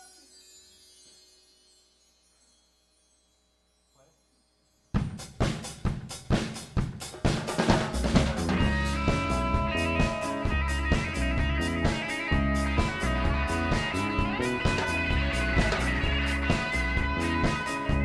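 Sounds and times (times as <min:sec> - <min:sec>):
drum kit playing: 0:05.0 - 0:18.0
rock band playing: 0:05.6 - 0:18.0.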